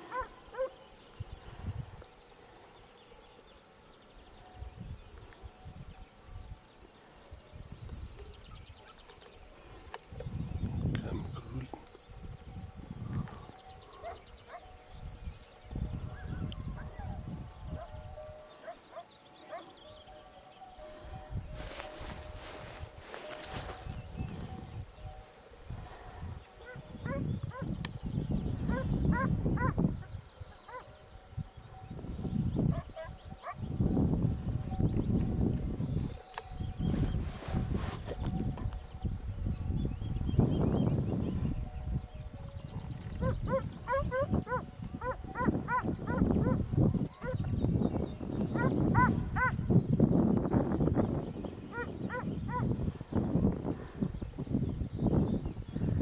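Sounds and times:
insect trill: 0:00.0 - 0:56.0
wind on microphone: 0:10.1 - 0:18.3, 0:21.0 - 0:56.0.

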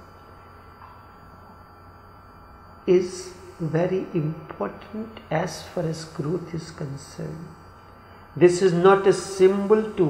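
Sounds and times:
electrical mains hum: 0:00.0 - 0:10.0
thin steady tone: 0:00.0 - 0:10.0.

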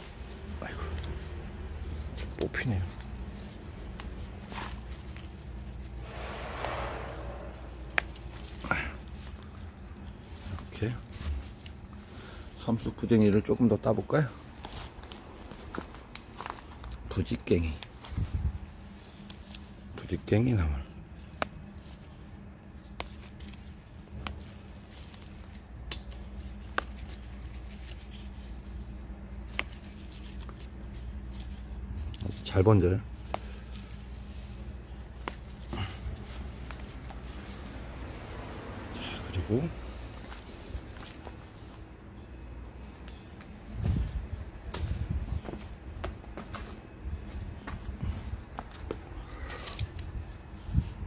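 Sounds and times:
leafy plants rustling: 0:00.0 - 0:51.0
plant stems snapping: 0:02.2 - 0:05.6, 0:14.6 - 0:17.0, 0:22.8 - 0:28.6, 0:29.4 - 0:32.4, 0:33.2 - 0:37.5, 0:49.4 - 0:50.2.

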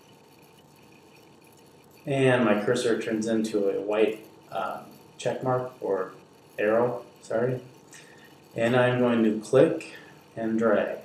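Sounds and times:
low hiss: 0:00.0 - 0:11.0.

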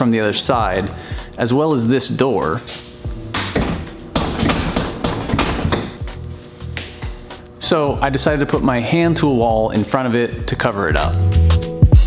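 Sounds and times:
door push bar clunking: 0:03.3 - 0:06.0
door knocking in its frame: 0:03.3 - 0:06.1.

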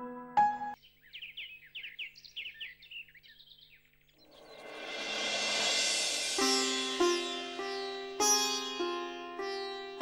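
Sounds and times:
small birds chirping: 0:00.7 - 0:04.9, 0:06.4 - 0:10.0.

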